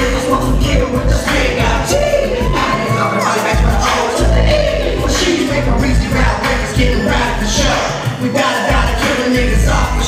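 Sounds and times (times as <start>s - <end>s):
crowd cheering and shouting: 0.0s - 10.0s
hip-hop backing track: 0.0s - 10.0s.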